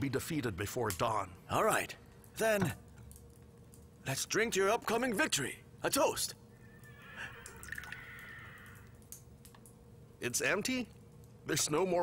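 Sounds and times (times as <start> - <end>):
liquid trickling into a cup: 6.8 - 9.1.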